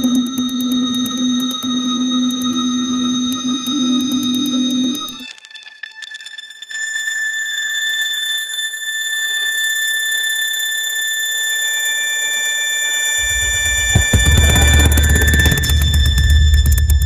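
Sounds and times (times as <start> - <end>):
high alarm-like synth tone: 0.0 - 5.3, 6.9 - 17.0
deep bass: 13.2 - 17.0.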